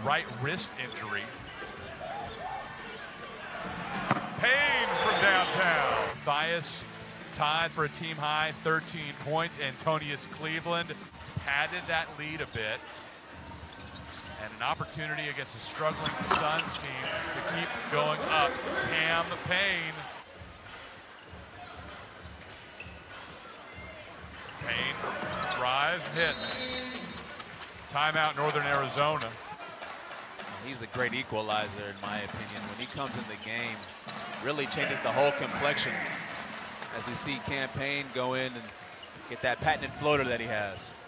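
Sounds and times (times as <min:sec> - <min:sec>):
basketball play on hardwood court: 0:01.4 - 0:04.4.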